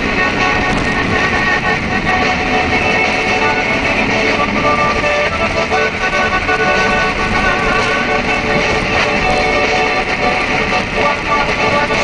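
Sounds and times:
car engine under load: 0.0 - 12.0
rock music on car radio: 0.0 - 12.0.

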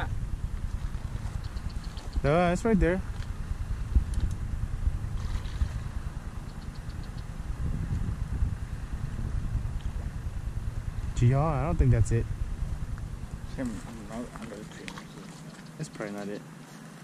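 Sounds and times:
wind buffeting microphone: 0.0 - 15.3.

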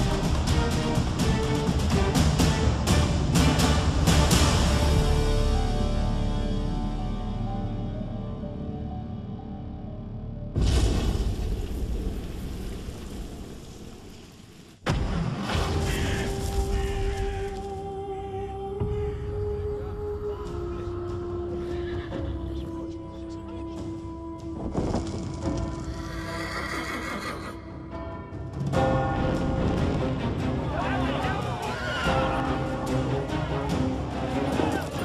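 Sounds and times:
horse whinnying: 25.8 - 27.6.

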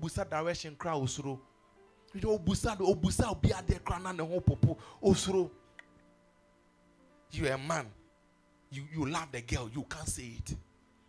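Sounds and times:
man preaching into a microphone: 0.0 - 1.4, 2.2 - 5.5, 7.3 - 8.0, 8.7 - 10.6.

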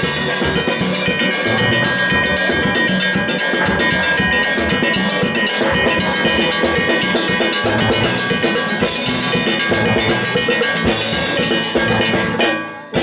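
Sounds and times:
fast percussion beat: 0.0 - 13.0
steel pans playing: 0.0 - 13.0.

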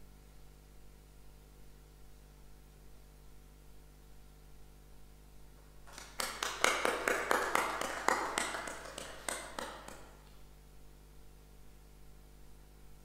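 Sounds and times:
audience applauding: 5.9 - 10.3.

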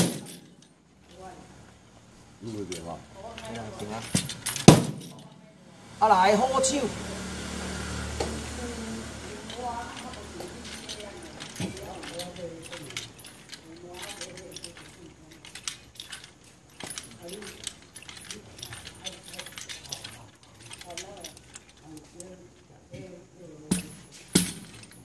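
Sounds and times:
voices murmuring: 1.0 - 24.1
loud wooden knocks: 4.2 - 5.1.

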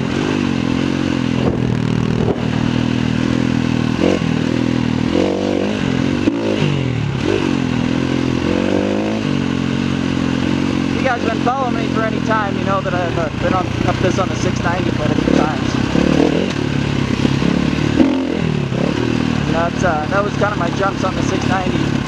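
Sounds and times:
dirt bike engine revving: 0.0 - 22.0.

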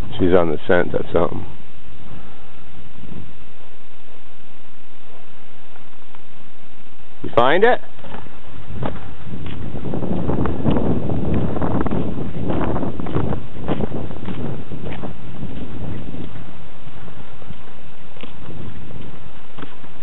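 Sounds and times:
footsteps crunching on snow: 2.1 - 20.0
wind buffeting microphone: 6.7 - 20.0.

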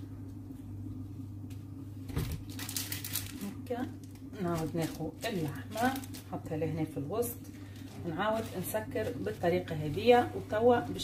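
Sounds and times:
steady low hum: 0.0 - 11.0
baking paper crinkling: 2.2 - 11.0.

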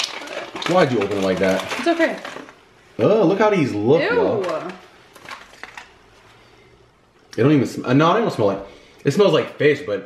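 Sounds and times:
plastic packaging clicks and rustles: 0.0 - 2.6, 4.4 - 6.3.

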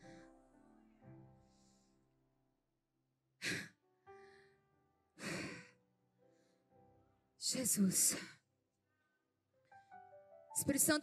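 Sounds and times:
soft sustained keyboard chords: 0.0 - 2.6.

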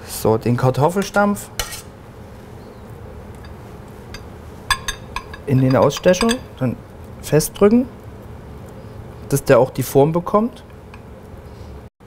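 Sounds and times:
electrical hum: 0.0 - 11.9.

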